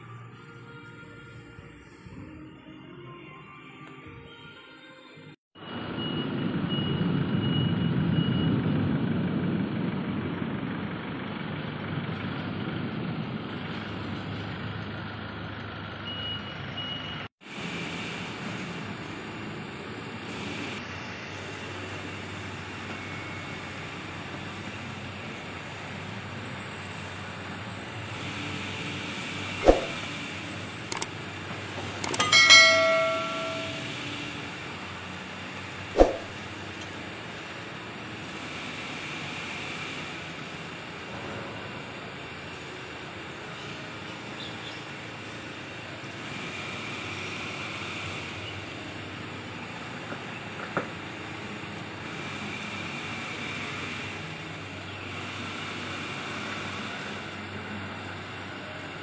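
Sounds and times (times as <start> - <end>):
ringing metallic clank: 32.0 - 34.1.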